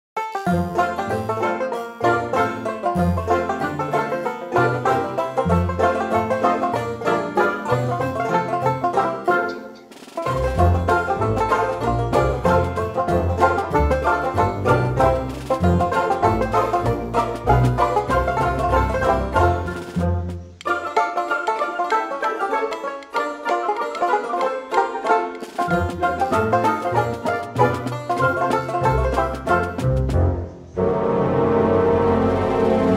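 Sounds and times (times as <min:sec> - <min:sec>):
plucked string music: 0:00.2 - 0:32.9
bass line: 0:10.3 - 0:20.6, 0:25.7 - 0:32.9.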